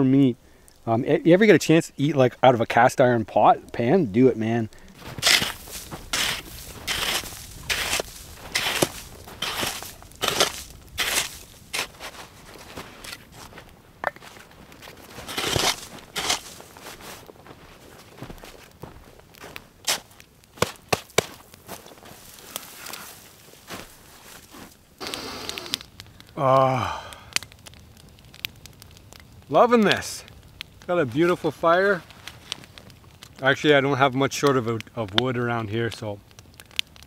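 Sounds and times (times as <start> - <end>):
footsteps crunching in snow: 4.9 - 25.6
snow shovel scraping snow: 5.0 - 13.5, 15.1 - 17.2.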